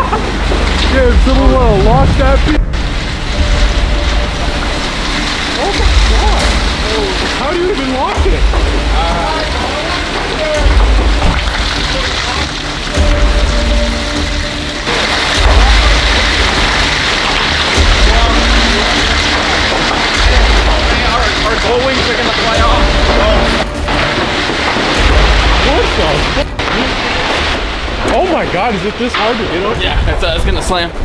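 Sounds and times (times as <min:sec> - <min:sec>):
heavy rain on metal building: 0:00.0 - 0:31.0
low rumbling surges: 0:00.0 - 0:31.0
music: 0:00.0 - 0:31.0.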